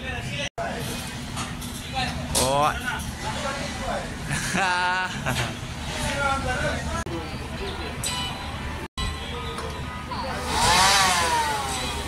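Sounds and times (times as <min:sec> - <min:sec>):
engine revving: 0:10.3 - 0:12.0.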